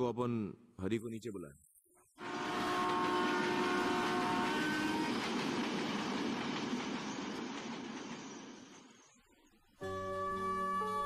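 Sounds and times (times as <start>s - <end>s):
train horn: 2.2s - 5.5s
train wheels rumbling: 2.2s - 9.1s.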